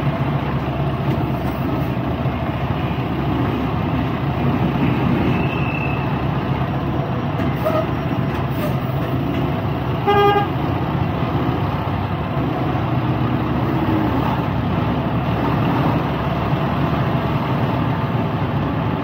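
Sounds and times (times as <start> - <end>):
truck diesel engine running: 0.0 - 19.0
truck horn toot: 7.6 - 8.0, 10.0 - 10.6.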